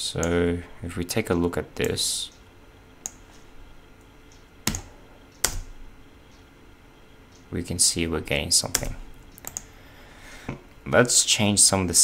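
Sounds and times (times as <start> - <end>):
computer keyboard clicks: 8.7 - 9.7.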